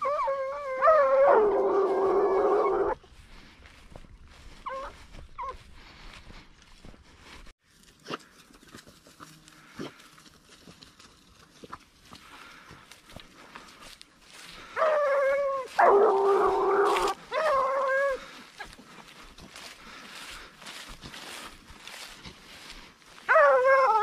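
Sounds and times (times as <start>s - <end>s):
hound baying: 0.0s - 3.0s, 4.5s - 5.6s, 14.6s - 18.8s, 23.2s - 24.0s
grass rustling: 0.0s - 24.0s.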